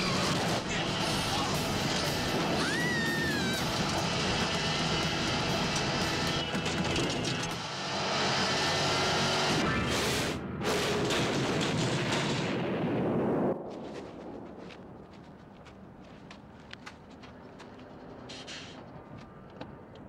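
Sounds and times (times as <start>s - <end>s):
vehicle crash and rumble: 9.4s - 15.5s.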